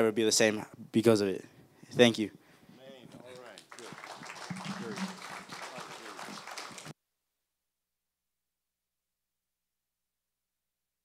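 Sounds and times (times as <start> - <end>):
congregation applauding: 3.2 - 6.9.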